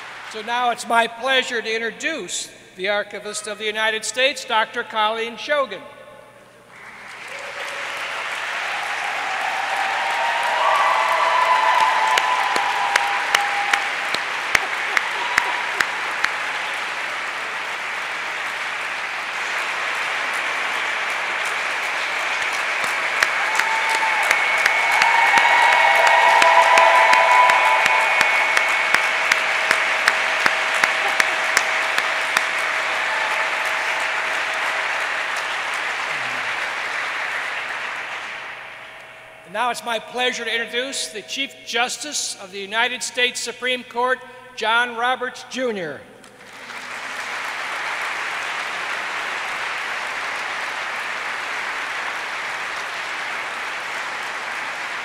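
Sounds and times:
audience applauding: 0.0s - 0.4s, 6.7s - 39.3s, 46.3s - 55.0s
close sharp claps: 0.0s - 0.4s, 6.7s - 39.2s, 46.2s - 55.0s.

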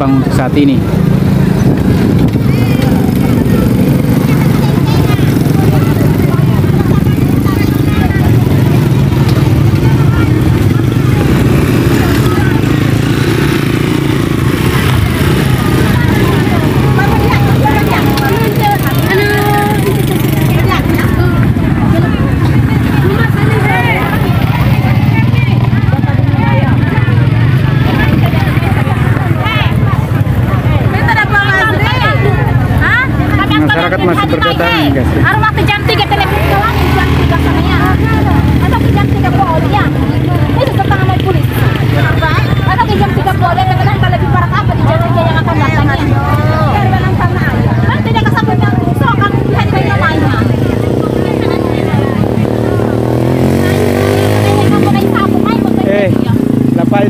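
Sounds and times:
motorcycle engines passing: 0.0s - 57.0s
people talking: 0.0s - 57.0s.

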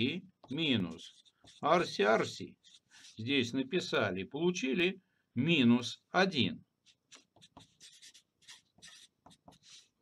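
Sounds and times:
marker scratching on paper: 0.0s - 3.5s, 6.8s - 10.0s.

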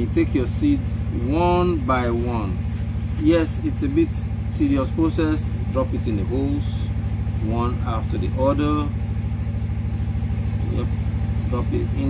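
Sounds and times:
engine idling: 0.0s - 12.0s.

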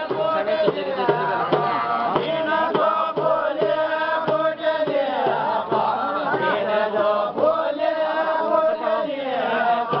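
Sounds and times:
men singing in unison: 0.0s - 10.0s.

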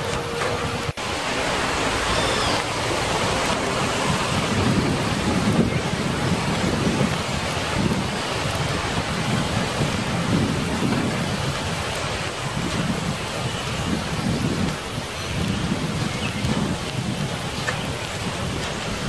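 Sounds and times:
steady rain: 0.0s - 19.0s.

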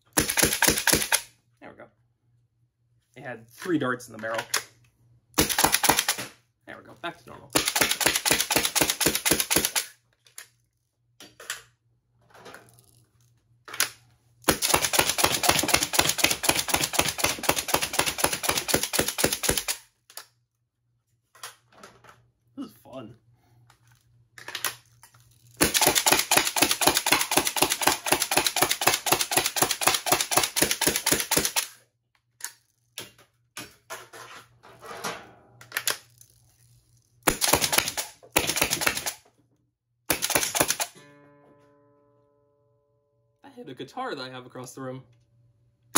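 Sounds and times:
toy blaster firing bursts: 7.6s - 9.9s, 14.5s - 19.8s, 25.6s - 31.7s.

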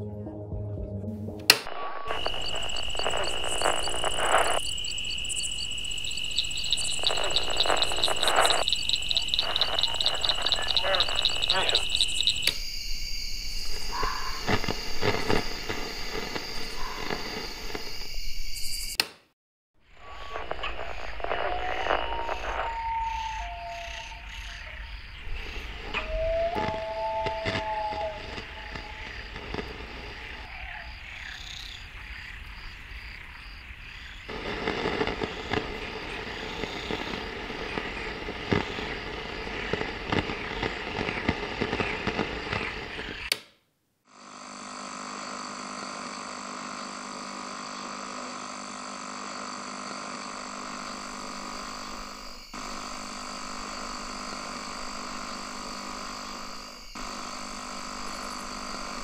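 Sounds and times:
crickets chirping: 1.7s - 19.0s, 19.9s - 43.3s, 44.4s - 59.0s
frogs croaking: 1.7s - 19.0s, 20.0s - 43.3s, 45.8s - 59.0s.

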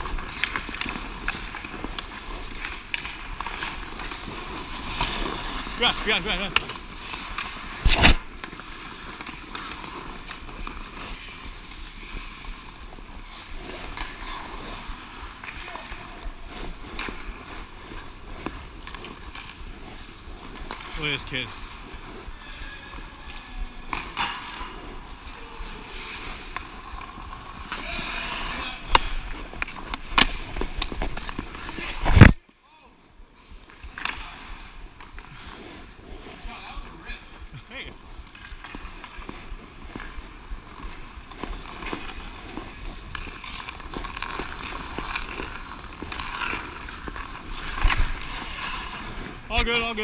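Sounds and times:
stick and puck clicks: 0.0s - 11.6s, 25.9s - 32.4s, 38.2s - 49.9s
skates scraping on ice: 0.0s - 50.0s.

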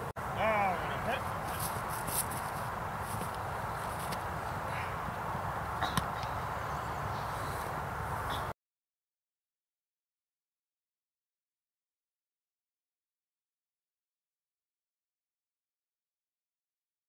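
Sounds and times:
outdoor field noise: 0.0s - 8.6s.

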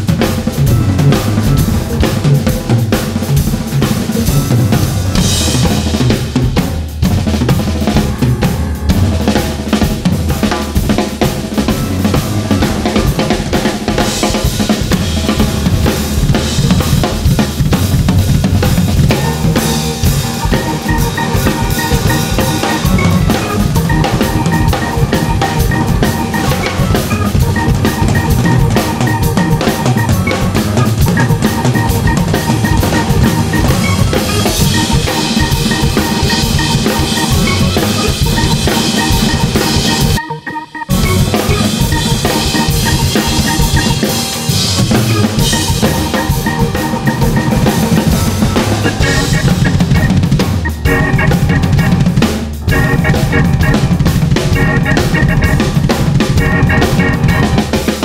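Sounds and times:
drum kits playing a groove: 0.0s - 58.0s
electronic keyboard: 0.0s - 58.0s.

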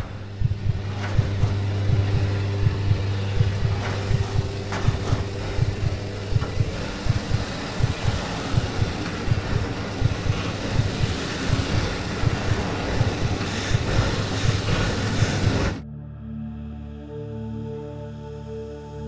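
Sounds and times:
aircraft engine drone in cabin: 0.0s - 15.8s
low buffeting thumps: 0.0s - 15.8s.

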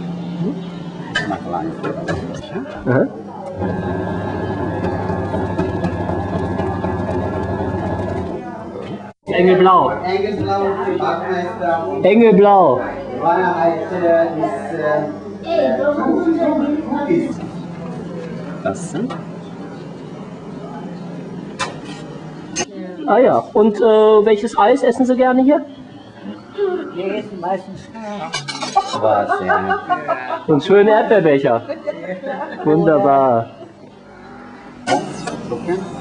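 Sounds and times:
faint background chatter: 0.0s - 36.0s
whipped cream machine motor hum: 2.9s - 9.1s.

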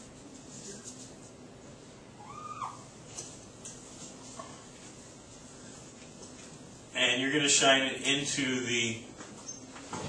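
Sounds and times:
marker squeak: 9.4s - 9.7s.

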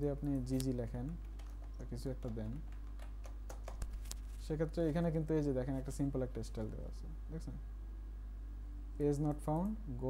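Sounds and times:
steady low hum: 0.0s - 10.0s
computer keyboard keystrokes: 0.6s - 4.2s.

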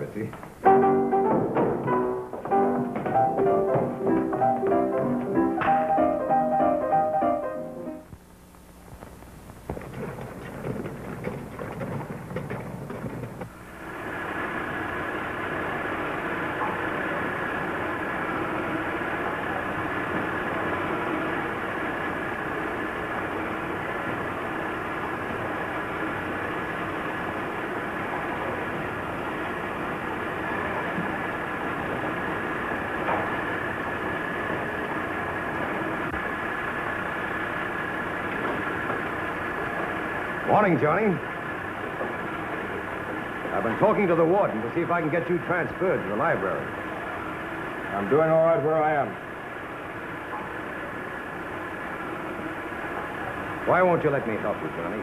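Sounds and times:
workshop machinery din: 0.0s - 8.2s, 9.5s - 55.0s
high machine whine: 0.0s - 55.0s
piano music: 0.6s - 8.1s.

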